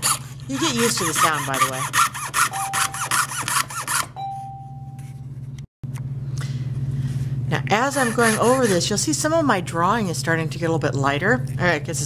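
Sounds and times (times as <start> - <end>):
saw blade cutting with whine: 0.0 - 4.2, 7.8 - 9.0
steady low hum: 0.0 - 12.0.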